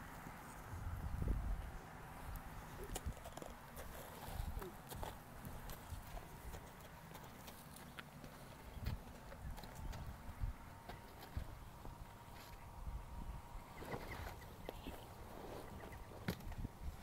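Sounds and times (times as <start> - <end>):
horse hooves on stony dirt: 2.8 - 12.6.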